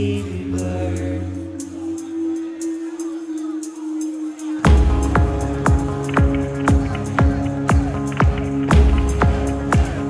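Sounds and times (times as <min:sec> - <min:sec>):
low bass drone: 0:04.7 - 0:07.4.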